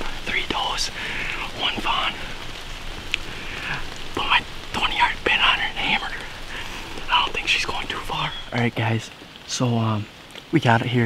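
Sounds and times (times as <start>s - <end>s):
man whispering excitedly: 0.0s - 9.2s.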